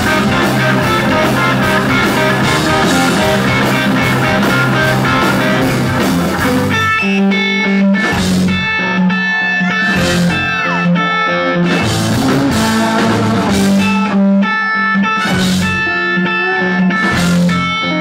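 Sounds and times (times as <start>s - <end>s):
bass: 0.0s - 18.0s
drums: 0.0s - 18.0s
electric guitar lead notes: 0.0s - 18.0s.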